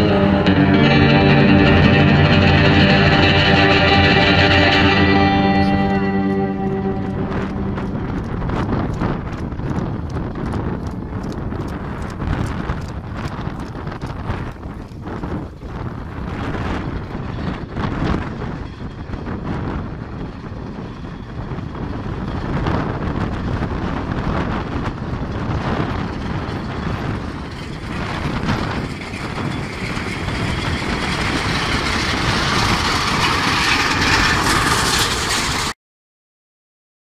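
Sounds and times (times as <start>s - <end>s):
wind on microphone: 0.0s - 35.7s
horses hauling wheeled carriage: 7.5s - 35.8s.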